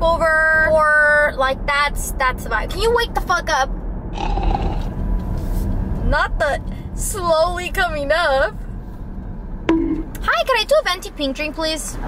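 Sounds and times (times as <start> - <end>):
low hum of car: 0.0 - 12.0
man snoring loudly: 4.2 - 4.9.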